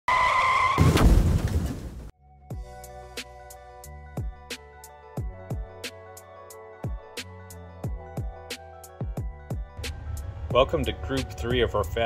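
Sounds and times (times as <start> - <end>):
car tyres screeching: 0.0 - 1.9
loud low car rumble: 9.8 - 12.0.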